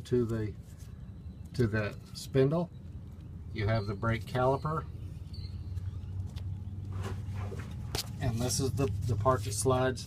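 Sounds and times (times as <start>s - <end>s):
steady low hum: 0.0s - 10.0s
camera handling rubbing and scraping: 6.8s - 9.0s.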